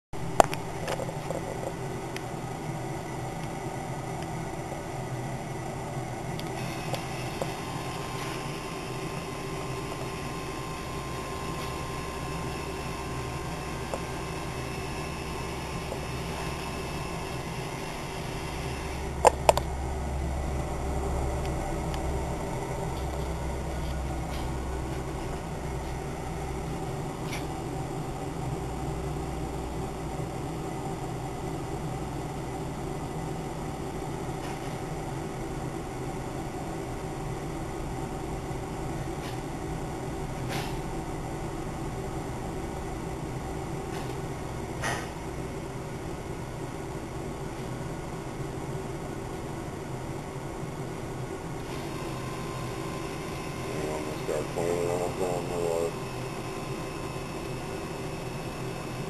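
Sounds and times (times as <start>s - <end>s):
fryer fan humming: 0.2s - 59.0s.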